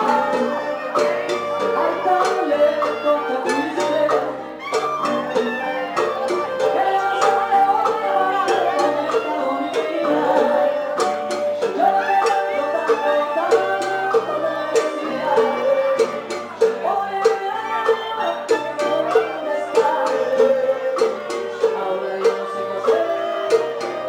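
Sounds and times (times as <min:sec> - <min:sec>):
small band playing a ballad: 0:00.0 - 0:24.0.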